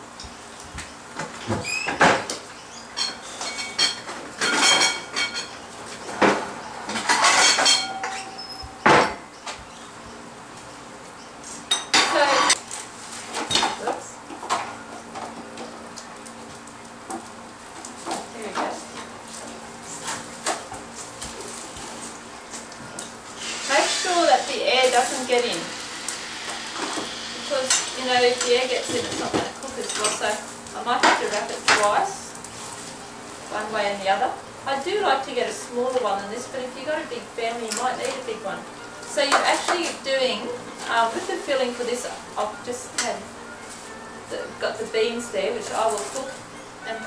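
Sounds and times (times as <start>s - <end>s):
plates and cutlery clinking: 2.9s - 9.2s, 11.6s - 12.6s, 26.8s - 32.2s.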